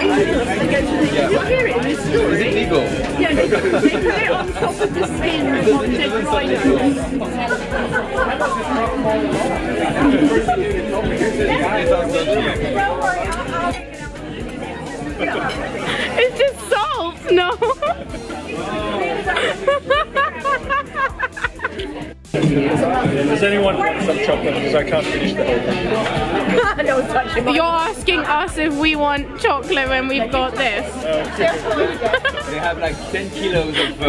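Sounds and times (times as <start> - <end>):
restaurant background chatter: 0.0 - 34.0
voices talking at table: 0.0 - 34.0.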